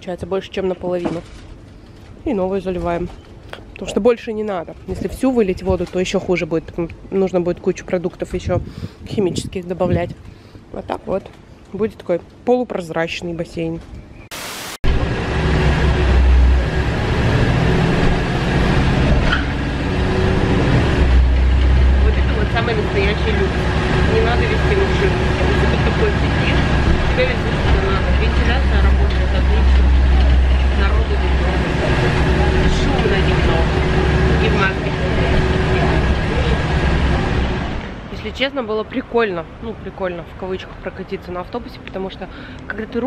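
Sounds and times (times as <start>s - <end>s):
bus engine and road rumble: 0.0s - 14.2s, 14.9s - 43.0s.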